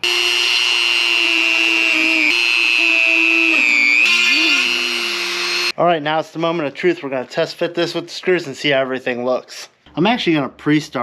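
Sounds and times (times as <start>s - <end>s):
rotary tool whining: 0.0s - 5.7s.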